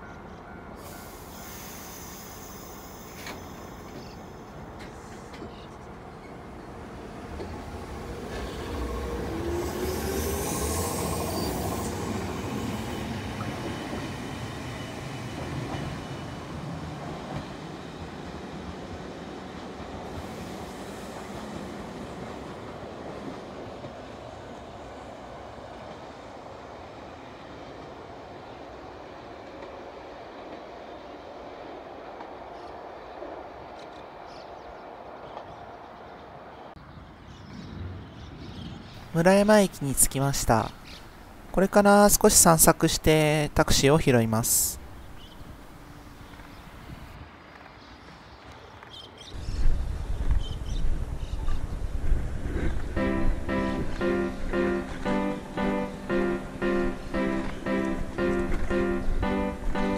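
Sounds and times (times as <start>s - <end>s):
electric train whine: 0.0s - 36.7s, 49.4s - 59.9s
rail and wheel noise: 0.0s - 59.9s.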